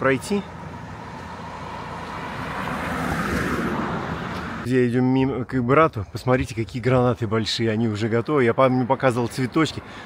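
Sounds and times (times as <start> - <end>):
car driving past: 0.6 - 4.6.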